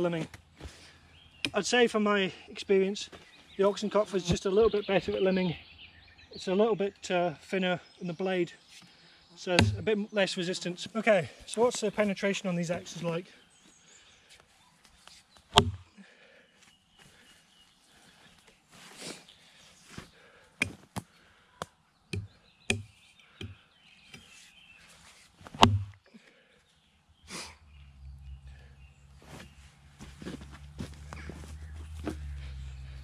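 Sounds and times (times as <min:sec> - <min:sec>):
axe chopping into log: 0:09.6 - 0:09.9, 0:15.5 - 0:15.8, 0:22.2 - 0:22.9, 0:25.5 - 0:26.0.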